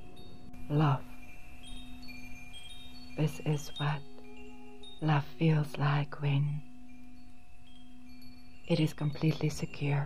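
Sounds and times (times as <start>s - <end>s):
chimes ringing: 0.0s - 10.0s
steady low hum: 0.0s - 10.0s.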